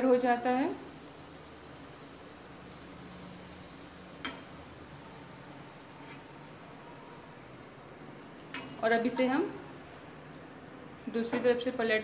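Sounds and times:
hot oil sizzling: 0:00.0 - 0:12.0.

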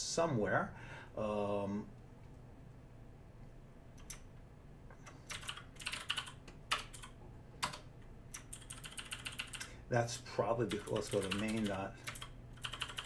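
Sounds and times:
computer keyboard typing: 0:05.0 - 0:09.7, 0:10.6 - 0:13.0.

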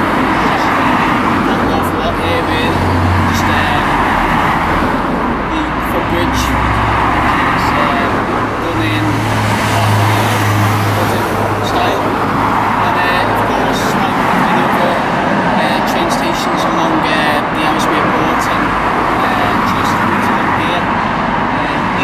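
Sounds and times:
cars passing: 0:00.0 - 0:22.0
low engine hum: 0:00.0 - 0:22.0.

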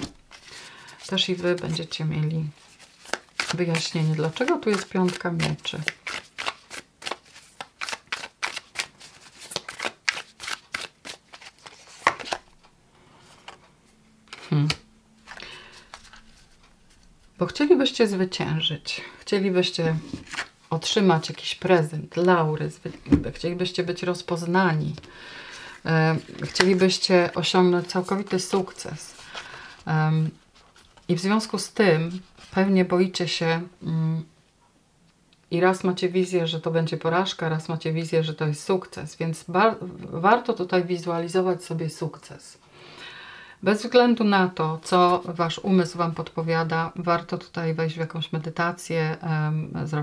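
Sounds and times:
woman breathing: 0:00.4 - 0:01.1, 0:15.3 - 0:16.1, 0:25.0 - 0:25.9, 0:29.2 - 0:29.9, 0:42.7 - 0:43.6
cards being shuffled: 0:02.5 - 0:13.6, 0:14.2 - 0:17.1, 0:20.0 - 0:20.5, 0:24.9 - 0:29.9
woman humming: 0:14.4 - 0:14.8.

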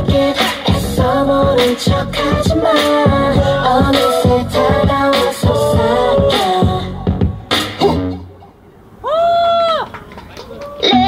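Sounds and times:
dance music: 0:00.0 - 0:08.2.

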